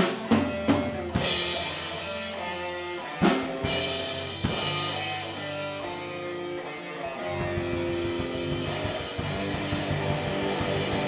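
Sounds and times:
drums playing steady beat: 0.0s - 6.4s, 7.4s - 11.0s
electric guitars ringing chords: 0.0s - 11.0s
bass line: 7.2s - 11.0s.

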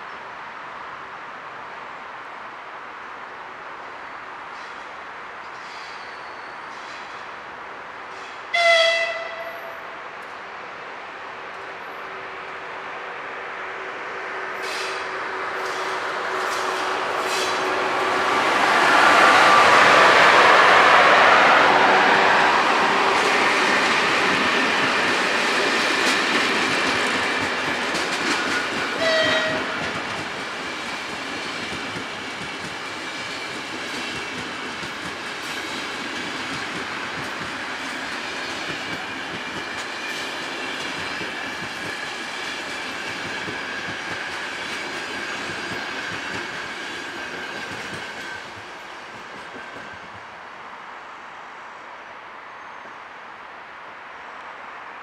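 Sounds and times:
train horn: 8.5s - 10.0s, 29.0s - 30.0s
train wheels clattering on rails: 14.6s - 20.3s, 22.7s - 50.3s.

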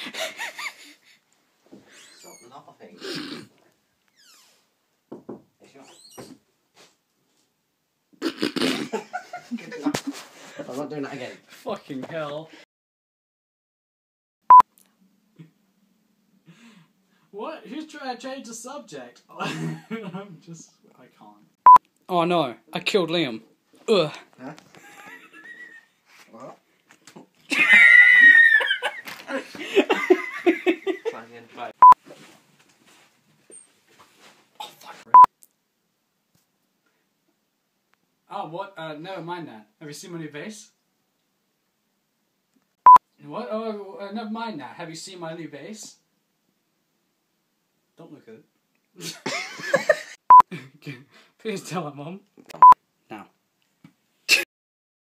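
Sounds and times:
person laughing in squeaky bursts: 1.9s - 2.4s, 8.2s - 9.3s, 24.8s - 25.9s, 27.5s - 29.1s.

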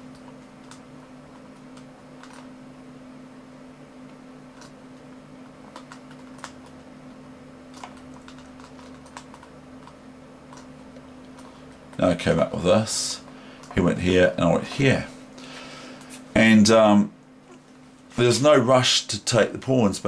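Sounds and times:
steady low hum: 0.0s - 20.0s
computer mouse clicks: 0.1s - 2.5s, 4.5s - 4.8s, 5.6s - 6.8s, 7.7s - 12.0s.

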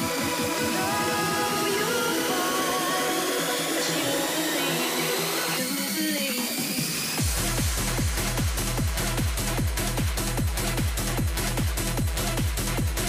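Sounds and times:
kick drum beat: 7.2s - 13.0s.

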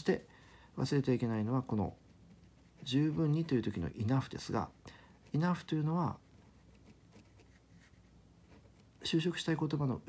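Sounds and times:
pen scratching on paper: 1.6s - 3.9s, 5.2s - 9.0s.

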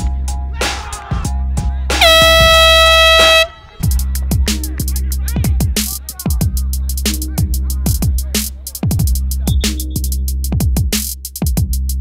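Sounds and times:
backing music: 0.0s - 12.0s
air horn: 2.0s - 3.8s.

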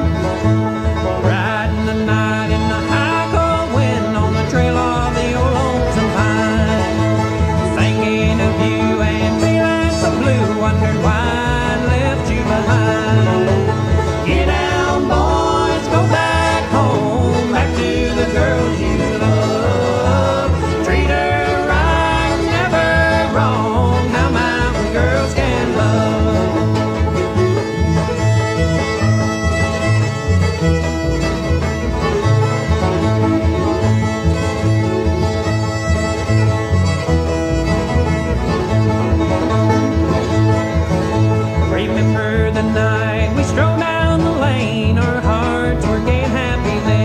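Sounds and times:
banjo and guitar: 0.0s - 47.0s
fiddle lead: 0.0s - 47.0s.

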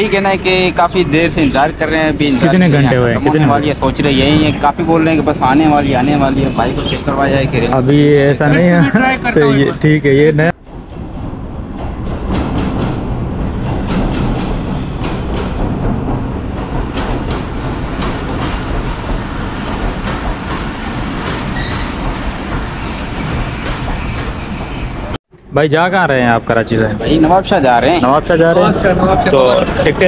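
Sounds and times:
diesel locomotive passing: 0.0s - 30.0s
train wheels clicking over rail joints: 10.7s - 25.2s
high wheel squeal: 19.4s - 20.0s, 20.8s - 25.2s.

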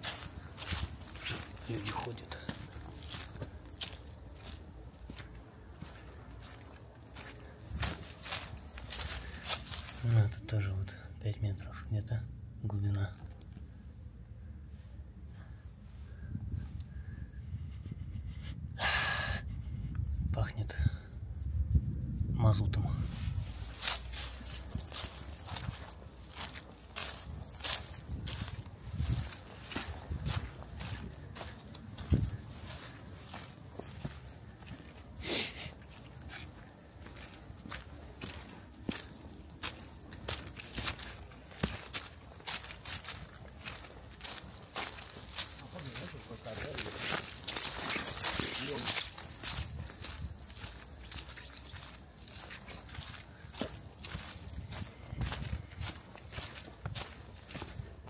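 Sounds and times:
footsteps crunching dry leaves: 0.0s - 10.4s, 23.0s - 58.0s.

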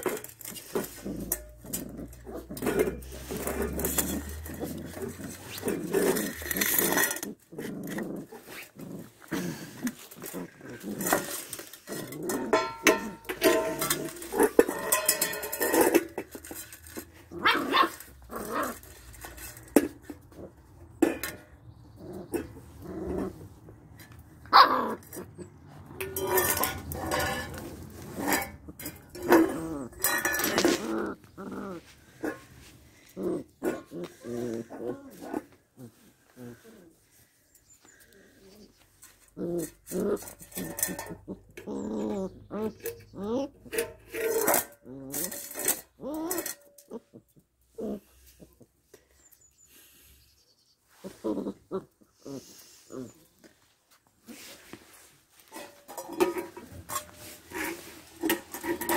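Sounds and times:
puppies growling: 0.0s - 37.1s, 38.0s - 48.7s.

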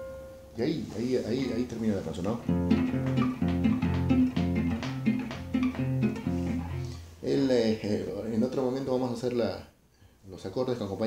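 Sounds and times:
acoustic guitar playing polka: 1.5s - 7.2s.

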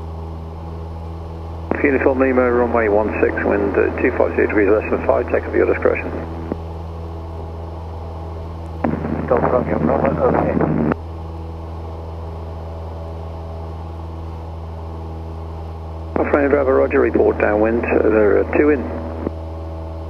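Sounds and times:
airplane engine droning: 0.0s - 20.0s
radio speech: 1.7s - 6.6s, 8.8s - 11.0s, 16.2s - 19.3s.

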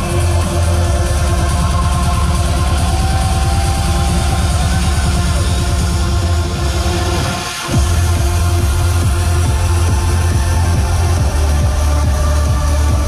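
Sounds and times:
loud trance music: 0.0s - 13.0s.

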